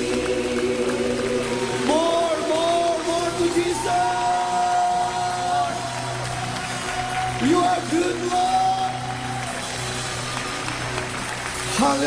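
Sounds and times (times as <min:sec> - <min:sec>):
keyboard and bass: 0:00.0 - 0:12.0.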